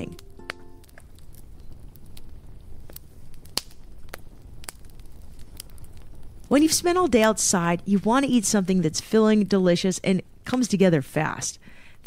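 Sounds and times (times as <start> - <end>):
campfire crackling and popping: 0.0 - 12.0.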